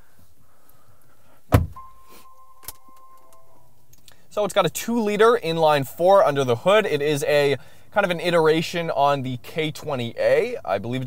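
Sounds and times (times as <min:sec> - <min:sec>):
car door thud: 0:01.5 - 0:01.8
electronic chime tone: 0:01.8 - 0:03.6.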